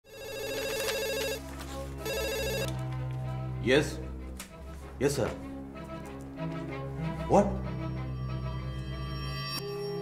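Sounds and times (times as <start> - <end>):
electronic telephone ringer warbling: 0.1 - 1.4, 2.1 - 2.7.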